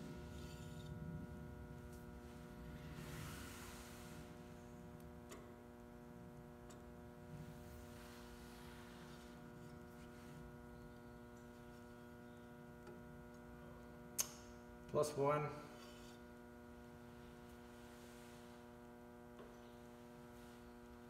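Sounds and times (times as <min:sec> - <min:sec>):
electrical mains hum: 0:00.0 - 0:21.0.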